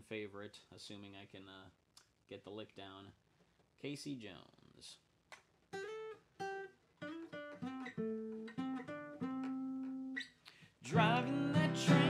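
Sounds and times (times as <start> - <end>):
acoustic guitar picking notes: 5.8 - 10.2, 10.9 - 12.0.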